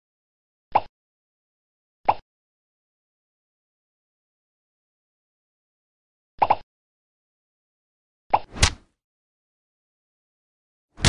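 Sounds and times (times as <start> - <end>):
fight sound effect pops: 8.4 - 8.9.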